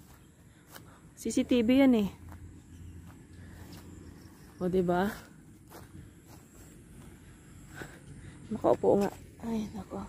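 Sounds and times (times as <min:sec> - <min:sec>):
footsteps on grass and leaves: 0:00.0 - 0:10.0
low outdoor background: 0:00.0 - 0:10.0.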